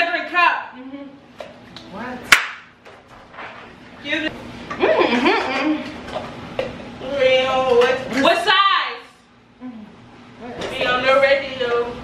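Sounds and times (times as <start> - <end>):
loud sharp smack: 2.3 - 2.7.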